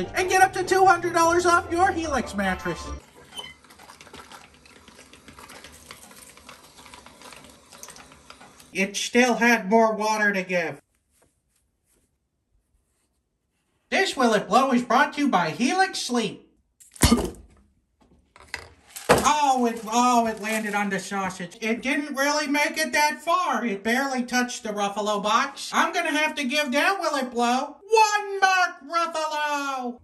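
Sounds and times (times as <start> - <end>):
clicking and crackling of filling casing: 3.0 - 8.8.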